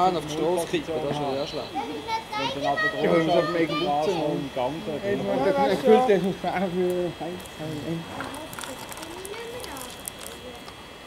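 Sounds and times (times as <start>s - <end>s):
voices talking: 0.0s - 11.0s
stones clicking and rattling: 8.2s - 10.4s.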